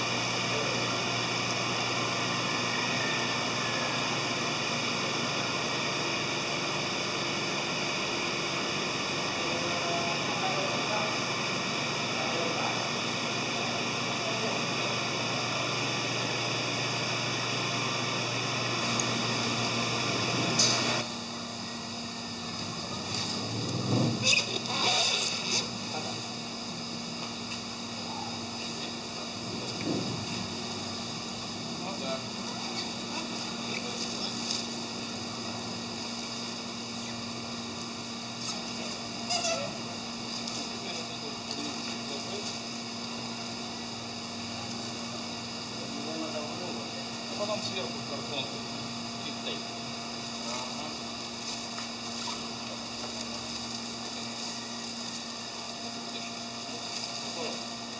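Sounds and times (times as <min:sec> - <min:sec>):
mechanical equipment humming: 0:00.0 - 0:57.9.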